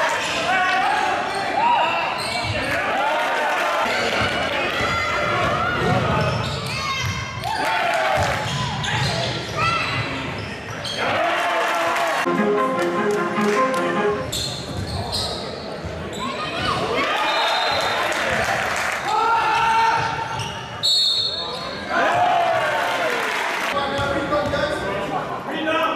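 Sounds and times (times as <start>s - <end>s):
sneakers squeaking on court floor: 2.2s - 2.8s, 5.9s - 7.4s, 8.4s - 11.0s, 14.2s - 16.9s, 20.0s - 21.9s.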